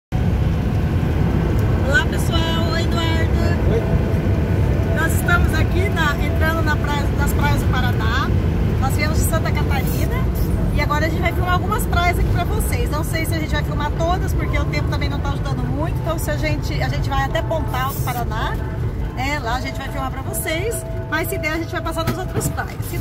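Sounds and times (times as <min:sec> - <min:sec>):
vehicle cab rumble: 0:00.2 - 0:23.0.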